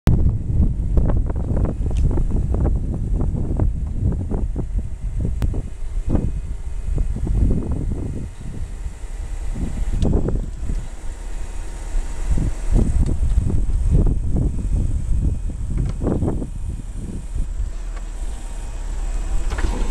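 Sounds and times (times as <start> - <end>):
wind buffeting microphone: 0.1 - 19.9
retractable car roof motor running: 0.2 - 19.9.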